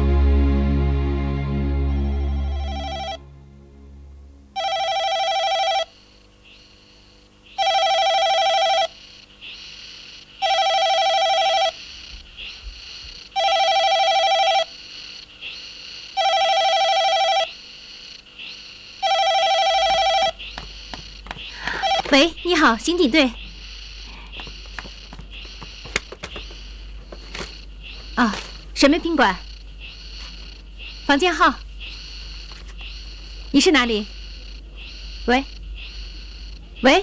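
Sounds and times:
background music: 0.0s - 4.6s
desk telephone ringing: 2.1s - 3.2s, 4.6s - 5.9s, 7.6s - 8.9s, 10.4s - 11.8s, 13.4s - 14.7s, 16.2s - 17.5s, 19.0s - 20.4s, 21.6s - 22.3s
faint knocks: 20.2s - 22.3s, 24.2s - 28.2s.

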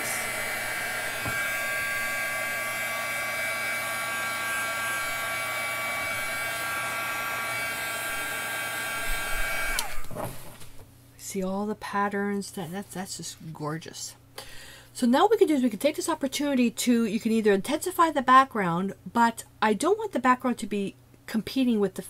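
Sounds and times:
heat gun blowing with whine: 0.0s - 10.7s.

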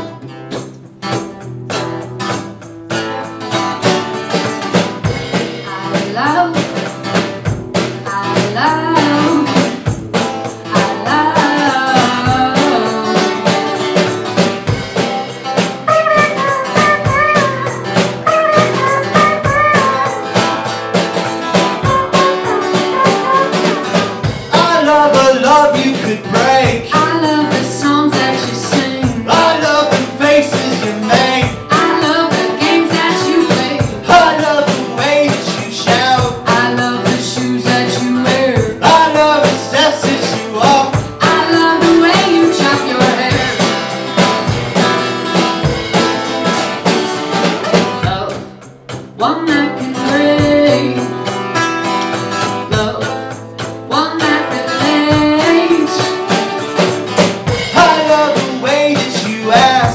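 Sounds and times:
acoustic guitar strumming: 0.0s - 59.9s
bucket drums and cymbals: 0.0s - 59.9s
person singing: 5.6s - 6.8s, 8.0s - 9.8s, 10.7s - 13.9s, 15.9s - 20.4s, 21.8s - 43.9s, 49.2s - 51.3s, 53.9s - 56.5s, 57.7s - 59.9s.

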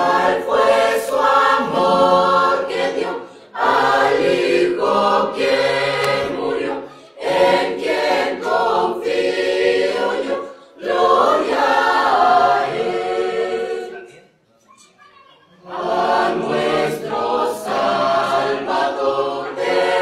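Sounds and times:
choir singing a hymn: 0.0s - 14.3s, 15.6s - 20.0s.

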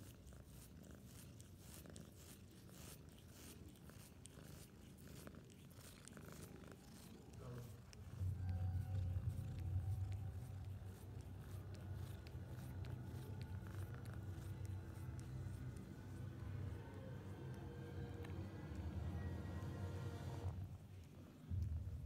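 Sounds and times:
kitten purring: 0.0s - 22.0s.

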